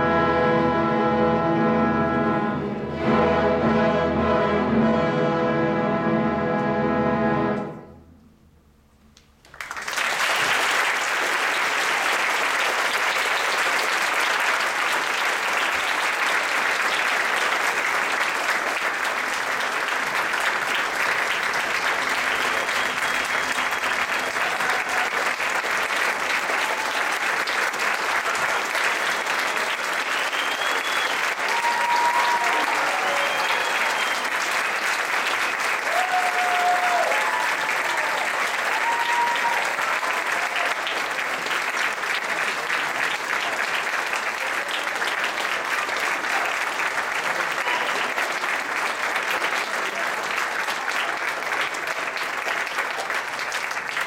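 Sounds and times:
audience applauding: 9.4 - 54.0.

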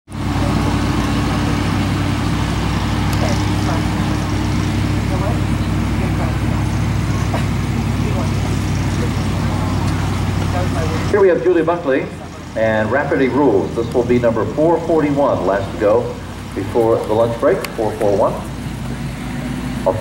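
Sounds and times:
loud low engine hum: 0.1 - 20.0
faint background voices: 0.2 - 11.2.

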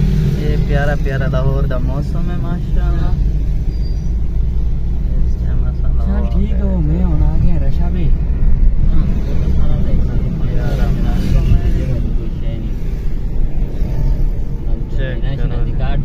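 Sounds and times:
car engine and road noise: 0.0 - 16.0.

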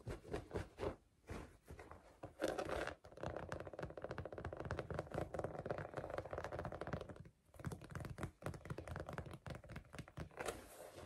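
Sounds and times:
fingertips tapping on rug: 3.3 - 10.4.

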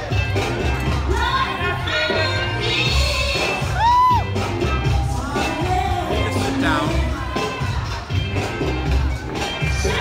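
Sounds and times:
cha-cha-cha dance music: 0.0 - 10.0
spectator shouting a whoop: 3.7 - 4.3.

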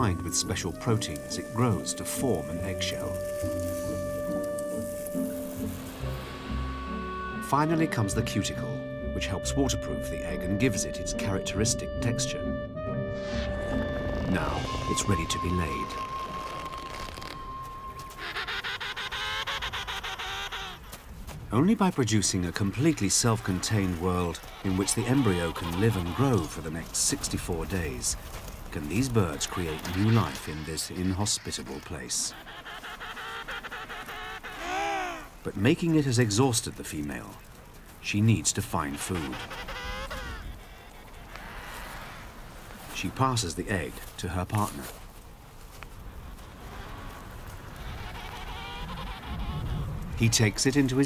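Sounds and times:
held musical note: 0.0 - 19.0
penguins calling: 0.0 - 45.0, 45.7 - 51.0.

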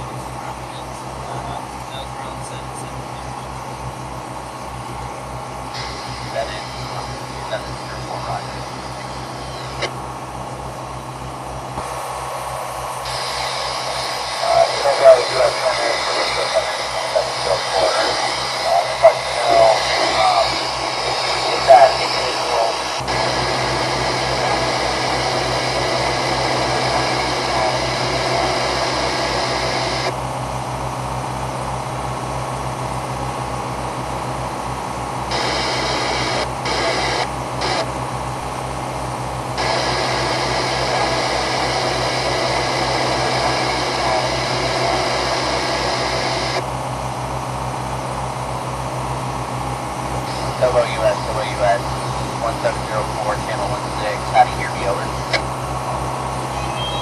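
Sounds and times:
garbled radio voice: 0.0 - 3.8, 5.8 - 9.9, 12.9 - 30.2, 35.3 - 37.9, 39.6 - 46.6, 50.3 - 55.4, 56.4 - 57.0
radio static: 0.0 - 10.0, 10.6 - 30.2, 35.1 - 46.7, 50.0 - 57.0
boat engine humming: 0.0 - 57.0.

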